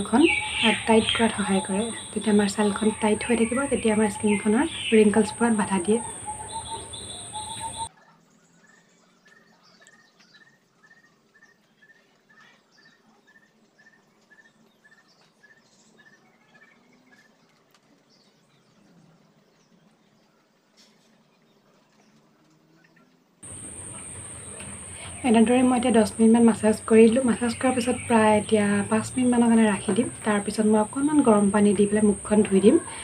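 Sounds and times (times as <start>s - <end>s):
small bird chirping: 0.0s - 7.9s
high whine: 23.4s - 32.3s
background hiss: 23.4s - 33.0s.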